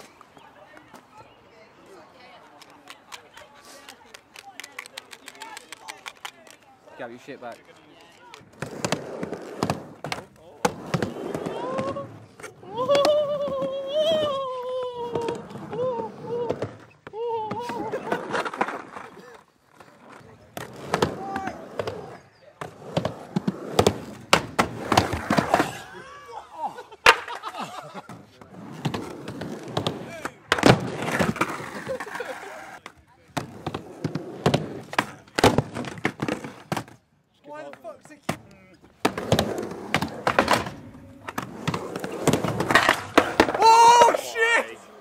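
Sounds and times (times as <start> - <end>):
skateboard wheels rolling on ramp: 8.0 - 26.0, 27.0 - 45.0
people shouting: 43.5 - 44.9.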